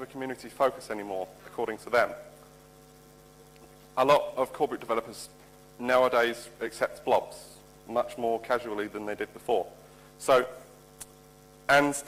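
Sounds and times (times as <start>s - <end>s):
person speaking: 0.0s - 2.4s
electrical mains hum: 0.0s - 12.0s.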